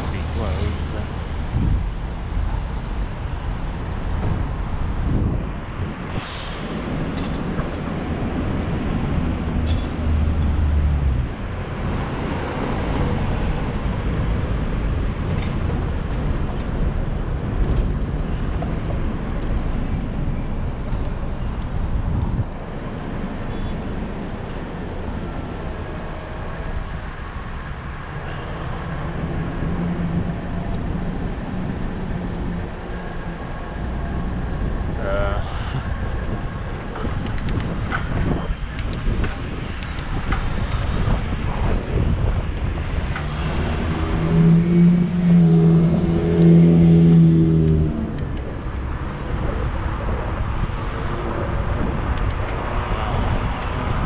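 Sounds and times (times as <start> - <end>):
car and engine noise: 0.0 - 54.0
steady engine hum: 0.0 - 54.0.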